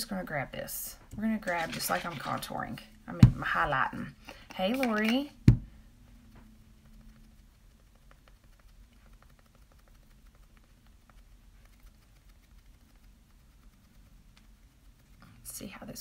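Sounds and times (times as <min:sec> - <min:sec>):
makeup sponge dabbing skin: 0:01.2 - 0:16.0.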